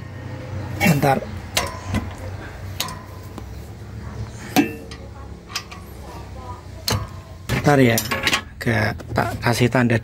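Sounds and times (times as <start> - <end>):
metal tools clinking: 1.5 - 3.4, 6.8 - 8.6.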